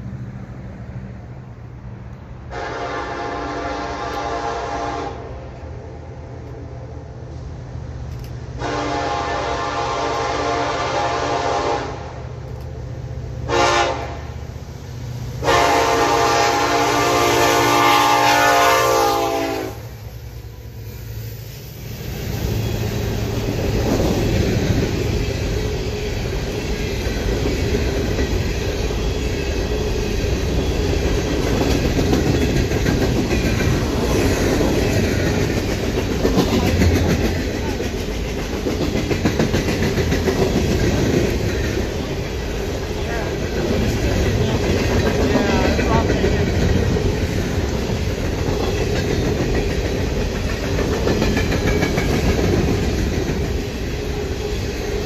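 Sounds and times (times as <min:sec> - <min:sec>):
freight train rumble and wheel clatter: 0:00.0 - 0:55.0
locomotive horn blasts: 0:02.5 - 0:05.4, 0:08.6 - 0:12.2, 0:13.5 - 0:14.4, 0:15.4 - 0:20.0.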